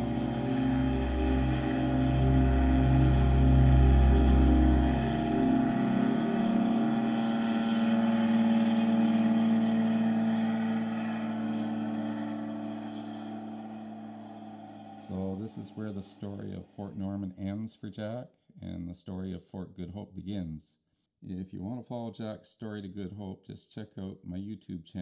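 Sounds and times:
deep rumble: 0.0 - 16.9
engine drone with held tones: 0.0 - 17.8.

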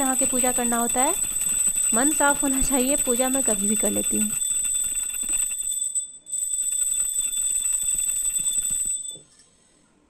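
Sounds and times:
small metal bell ringing rapidly: 0.0 - 9.2.

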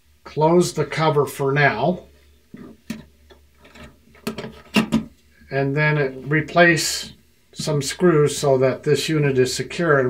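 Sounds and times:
light metal knocks and scrapes: 2.5 - 5.1.

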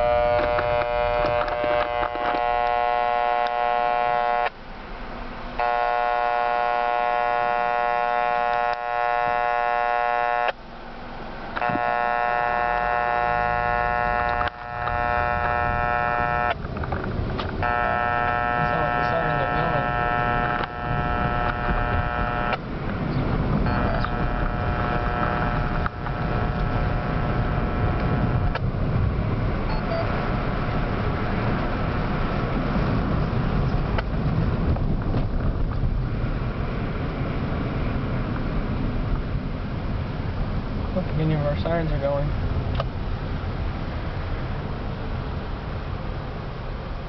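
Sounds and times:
long electronic tones: 0.0 - 4.5, 5.6 - 10.7, 11.5 - 28.6, 29.6 - 31.3
car road and engine noise: 0.0 - 47.0.

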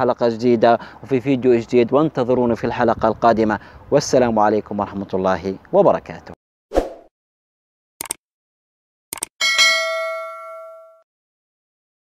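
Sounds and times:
bell-like ding: 9.4 - 11.1.

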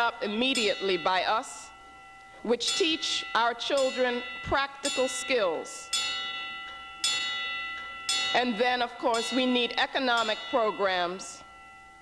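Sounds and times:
bell-like chime notes: 0.0 - 12.0.

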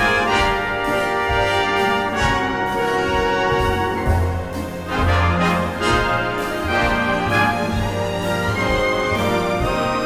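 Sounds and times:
background music of held notes: 0.0 - 10.0.

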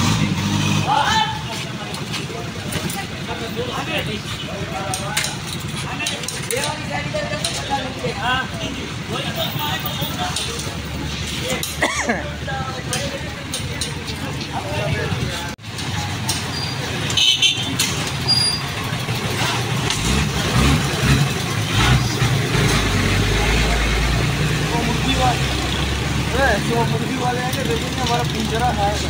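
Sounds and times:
street noise: 0.0 - 29.0
vehicle engine rumbling: 0.0 - 29.0
men's voices: 0.8 - 16.1, 22.8 - 29.0.

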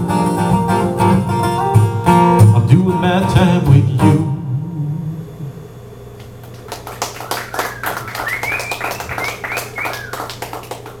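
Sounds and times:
acoustic guitar chord: 0.0 - 5.5
audience clapping: 6.4 - 11.0
short high calls: 7.1 - 10.6.

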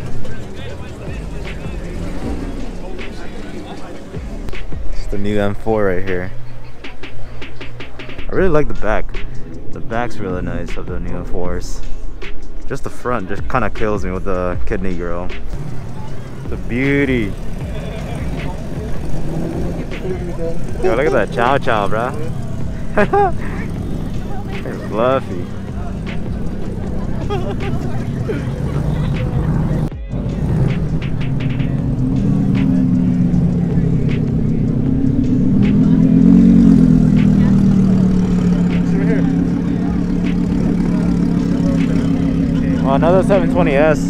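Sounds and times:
car engine running at low speed: 0.0 - 6.7, 15.4 - 44.0.

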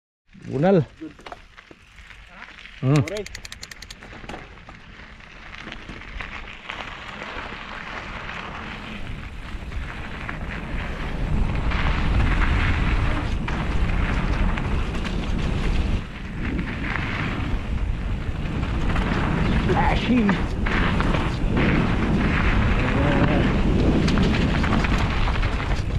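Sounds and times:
tyres rattling over loose dirt: 0.4 - 25.9
wind rushing over microphone: 7.4 - 25.9.

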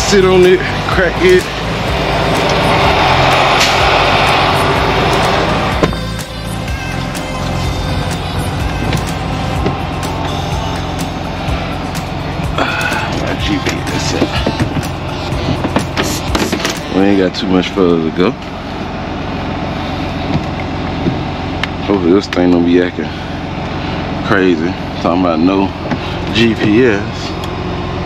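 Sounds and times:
diesel truck engine idling: 0.0 - 28.0.

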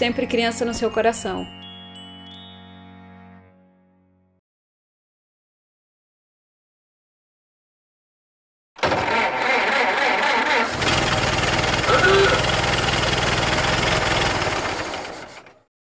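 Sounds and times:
engine rumbling: 8.8 - 15.6.

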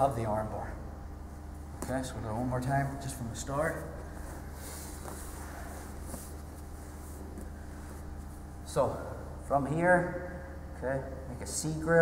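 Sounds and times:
low hall hum: 0.0 - 12.0
cloth rustling on mats: 3.6 - 8.6.

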